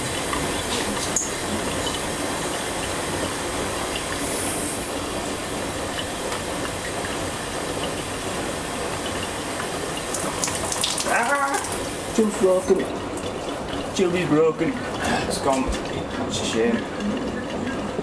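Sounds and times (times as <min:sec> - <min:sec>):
washing machine water rushing: 0:00.0 - 0:18.0.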